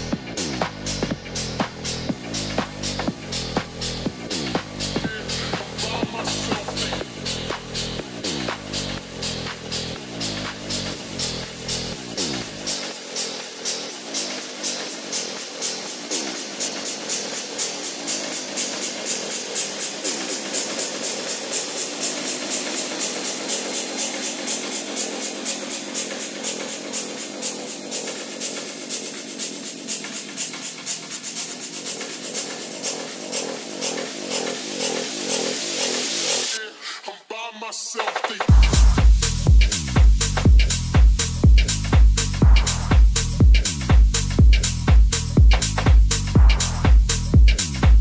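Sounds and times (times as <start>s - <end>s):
fast percussion pattern: 0.0s - 36.6s, 38.0s - 48.0s
techno music: 0.0s - 36.8s, 37.4s - 48.0s.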